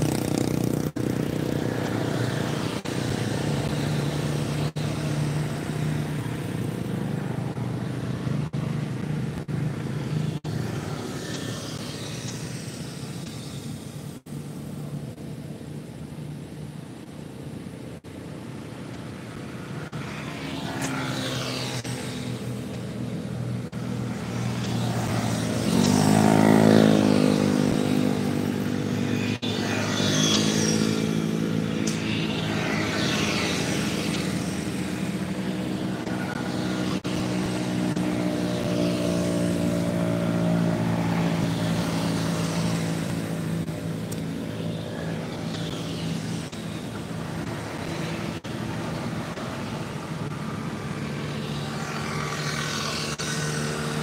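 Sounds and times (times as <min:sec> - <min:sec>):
aircraft engine droning overhead: 0:00.0 - 0:54.0.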